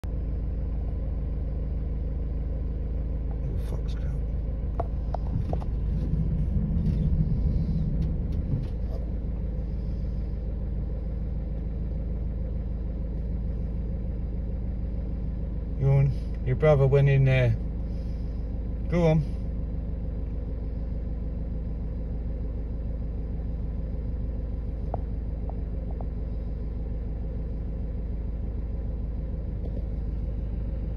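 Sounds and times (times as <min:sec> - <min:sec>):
car engine rumble inside cabin: 0:00.0 - 0:30.9.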